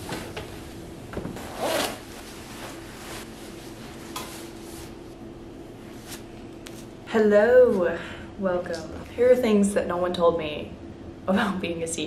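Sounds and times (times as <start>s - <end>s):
clothing zipper pulled open: 1.4s - 2.0s.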